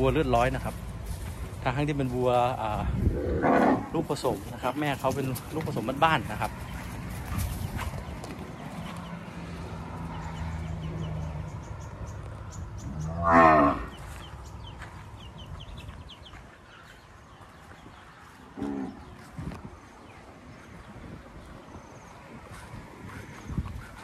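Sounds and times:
cattle mooing: 3.1s - 4.0s, 13.0s - 13.9s.

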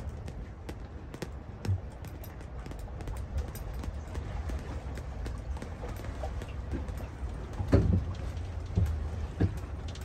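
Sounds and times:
boat engine rumble: 0.0s - 10.0s
light taps and knocks: 0.0s - 10.0s.

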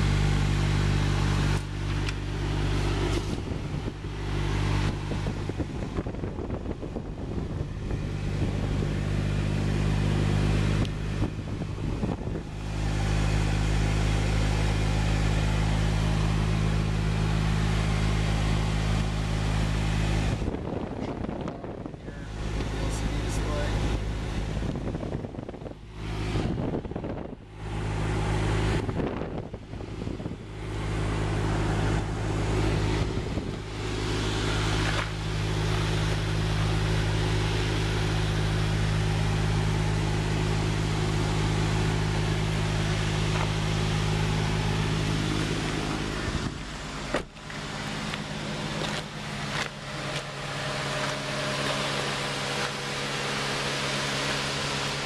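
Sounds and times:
car engine idling: 0.0s - 55.0s.

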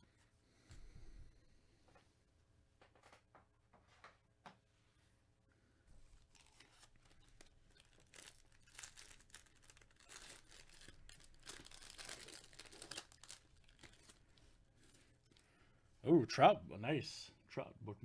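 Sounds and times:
foil wrapper tearing and crinkling: 6.2s - 15.4s.

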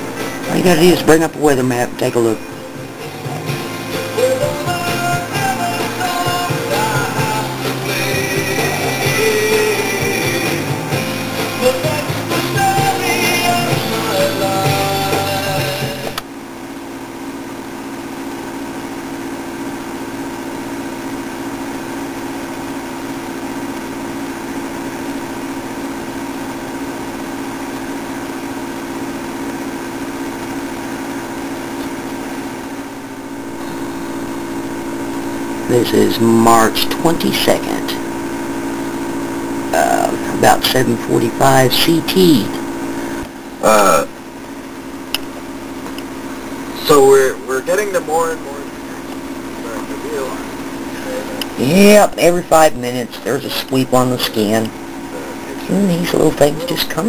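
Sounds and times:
machine hum: 0.0s - 57.0s.

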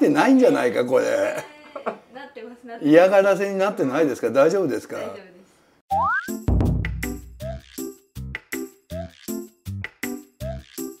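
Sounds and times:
springy boing effect: 5.9s - 7.2s.

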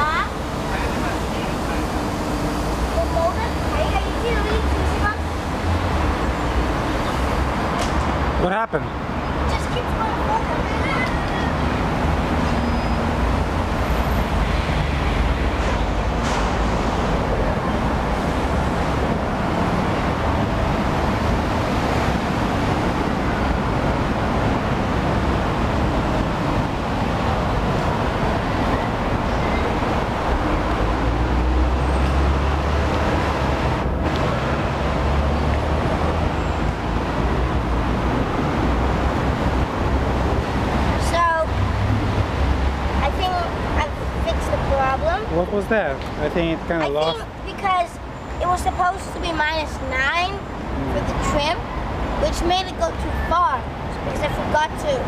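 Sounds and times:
low city rumble: 0.0s - 55.0s.

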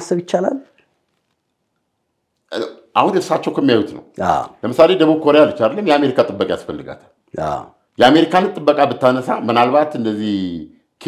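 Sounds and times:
man talking: 2.5s - 11.0s.

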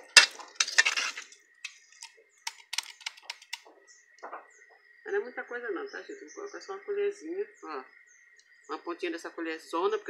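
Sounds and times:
plastic container and spoon clicks: 2.5s - 3.6s
faint bird chirps: 3.6s - 10.0s.

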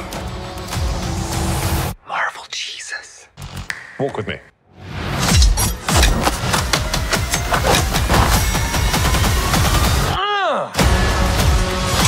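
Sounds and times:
man whispering softly: 1.9s - 3.4s.

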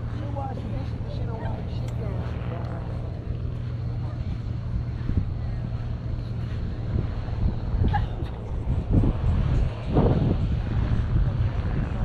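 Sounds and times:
low steady rumble: 0.0s - 12.0s
people talking: 0.1s - 4.5s.

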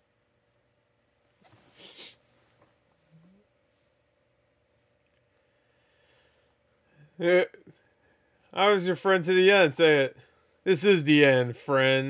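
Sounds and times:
person sniffing: 1.5s - 2.3s.

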